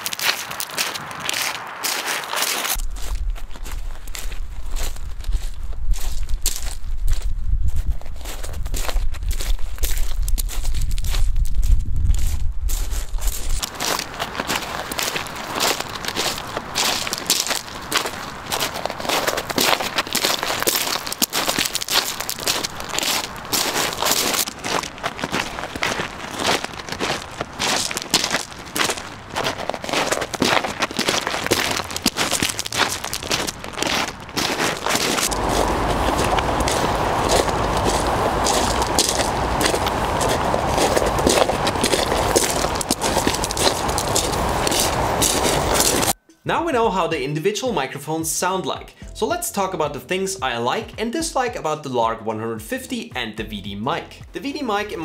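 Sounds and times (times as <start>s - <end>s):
footsteps crunching on gravel: 0.0s - 46.2s, 53.2s - 55.0s
low rumble: 2.8s - 13.7s, 31.0s - 46.2s.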